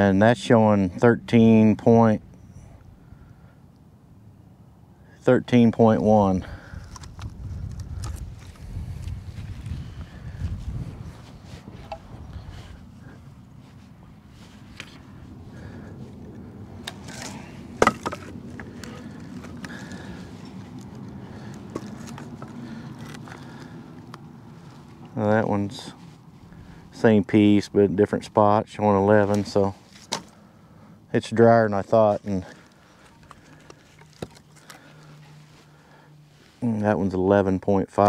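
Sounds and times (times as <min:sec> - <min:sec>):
low rumble of handling noise: 0:00.0 - 0:38.0
firewood knocking wood on wood: 0:17.8 - 0:18.7.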